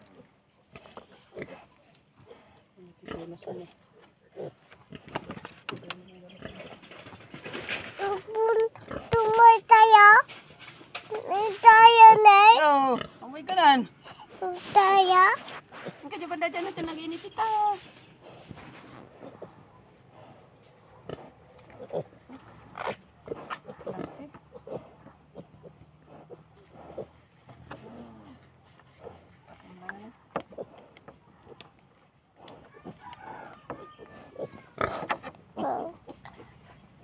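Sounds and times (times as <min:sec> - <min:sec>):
pigs grunting and squealing: 0:21.1 - 0:29.3, 0:32.4 - 0:36.3.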